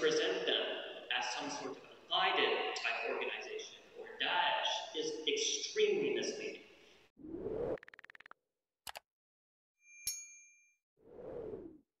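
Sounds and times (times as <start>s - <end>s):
bright bell-like ding: 9.8s - 10.8s.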